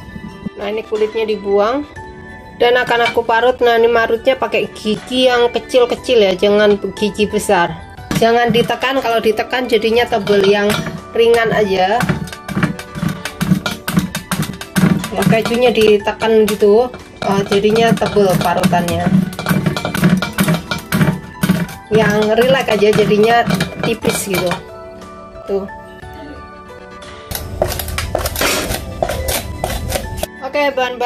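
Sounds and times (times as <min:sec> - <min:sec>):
background music: 0:00.0 - 0:31.0
cheese grating rasps: 0:27.3 - 0:30.2.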